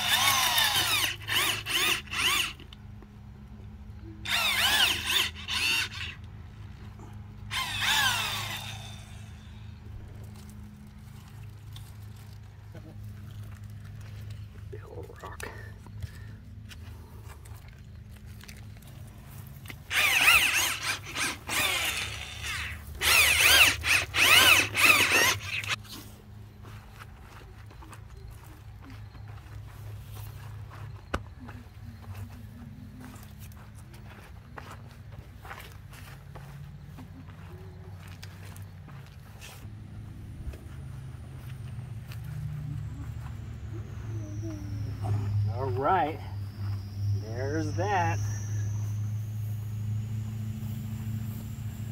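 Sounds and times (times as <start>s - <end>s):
harsh wavering whine: 0.0s - 51.9s.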